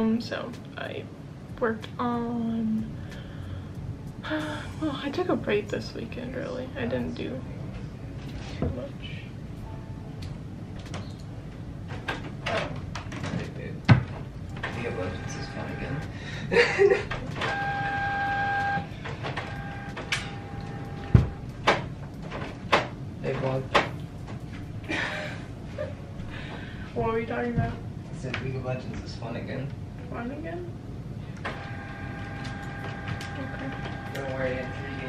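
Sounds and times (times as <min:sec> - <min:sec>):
printer mechanical whine: 0:14.5 - 0:16.2, 0:17.3 - 0:21.9, 0:31.4 - 0:35.0.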